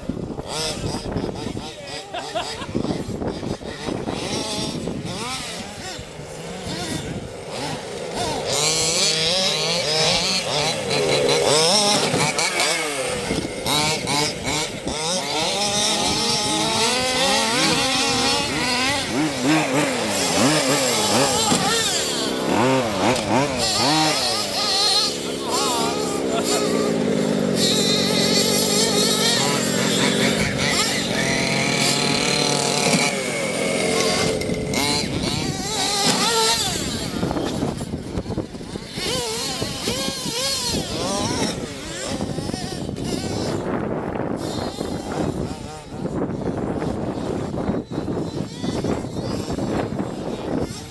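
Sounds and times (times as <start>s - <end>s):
radio-controlled car motors revving: 0.0s - 50.9s.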